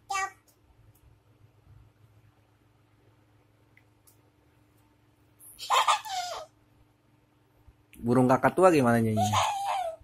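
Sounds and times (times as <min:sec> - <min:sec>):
toddler squealing: 0:09.2 - 0:10.0.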